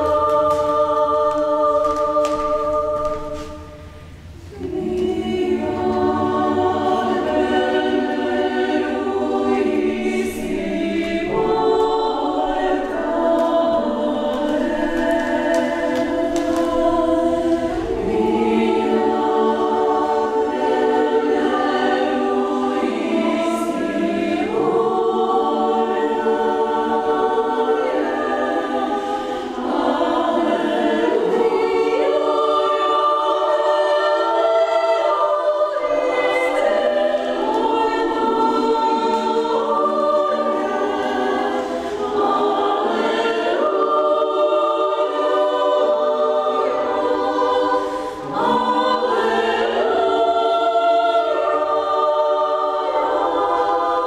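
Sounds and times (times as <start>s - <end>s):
women's choir singing a cappella: 0.0s - 54.0s.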